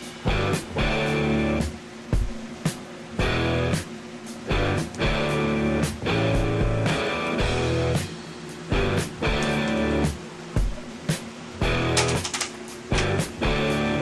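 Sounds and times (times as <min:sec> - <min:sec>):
rock music with guitar: 0:00.0 - 0:14.0.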